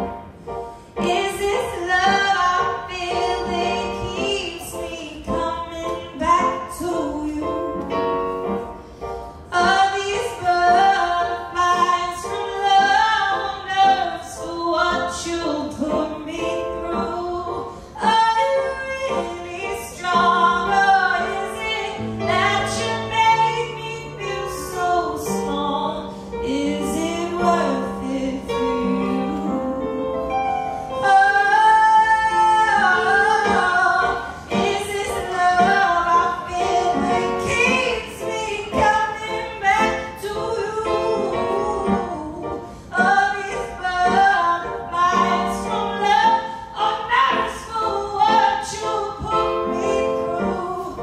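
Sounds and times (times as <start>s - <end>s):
light keyboard accompaniment: 0.0s - 51.0s
woman singing soul song: 1.0s - 7.9s, 9.5s - 51.0s.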